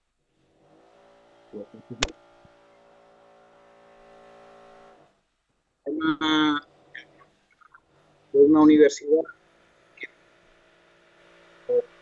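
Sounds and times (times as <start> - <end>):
person speaking: 1.6 - 2.1, 8.4 - 9.3.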